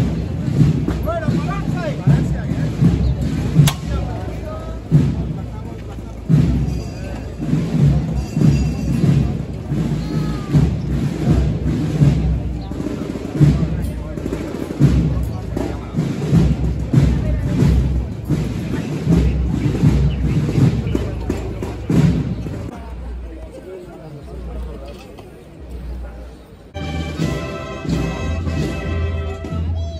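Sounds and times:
drums beating a march: 0.0 - 22.8, 26.7 - 29.9
crowd voices: 0.0 - 29.9.

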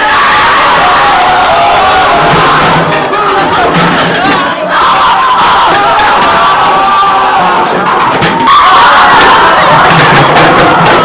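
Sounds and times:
teenagers cheering and shouting: 0.0 - 11.0.

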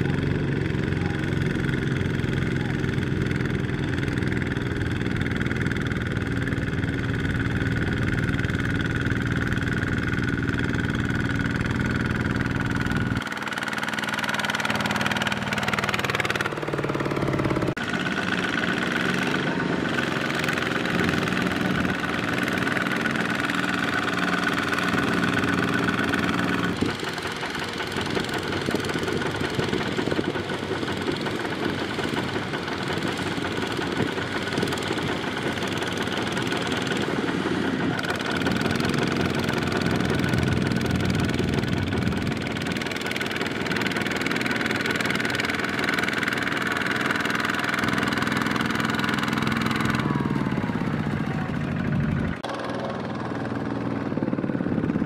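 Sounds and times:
diesel tractor engine under load: 0.0 - 55.0.

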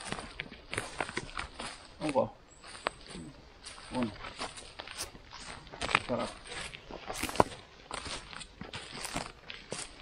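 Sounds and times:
dry grass and moss rustling: 0.0 - 10.0.

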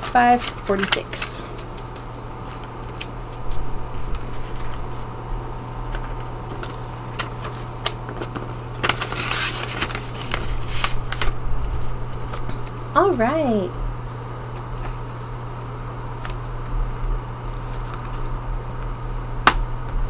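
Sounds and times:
paper rustling and crinkling: 0.0 - 12.9, 14.5 - 18.8.

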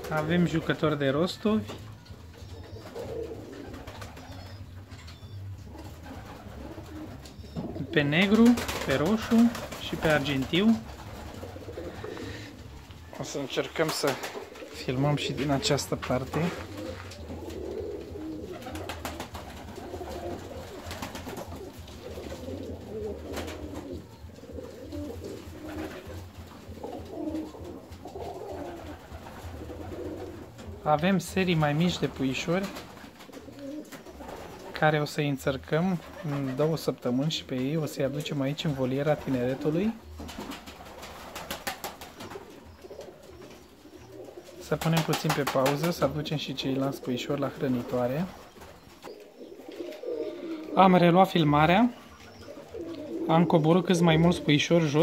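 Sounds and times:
pigeons cooing softly: 0.0 - 55.0.

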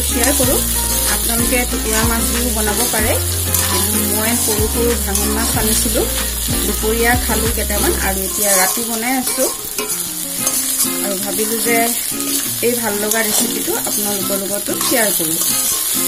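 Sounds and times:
metal spoon scraping a pan: 0.0 - 16.0
vegetables sizzling in hot oil: 0.0 - 16.0.

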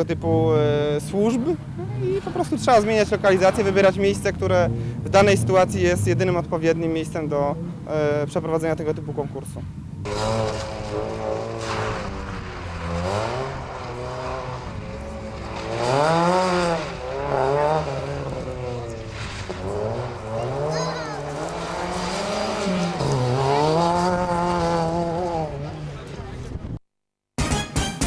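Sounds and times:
car engine revving: 9.6 - 26.8.

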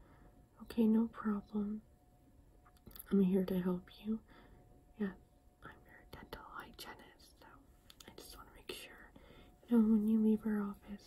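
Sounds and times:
woman whispering: 2.9 - 4.3, 4.9 - 11.0.

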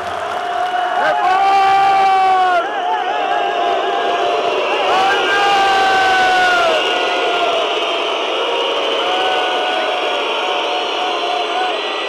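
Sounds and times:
crowd chanting in unison: 0.0 - 12.0.

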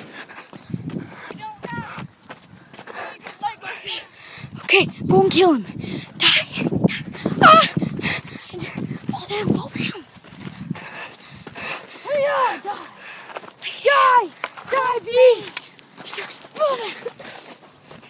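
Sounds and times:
children yelling and crying: 1.2 - 2.0, 3.1 - 10.4, 11.0 - 17.5.

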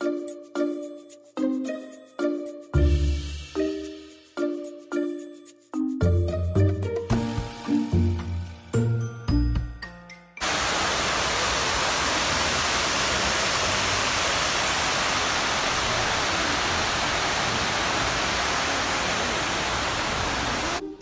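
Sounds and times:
water pouring down walls: 10.4 - 20.8.

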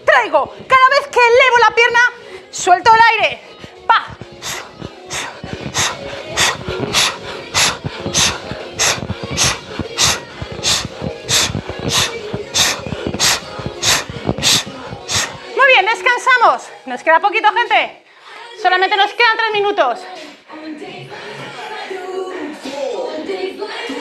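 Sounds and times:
faint background music: 0.0 - 24.0.

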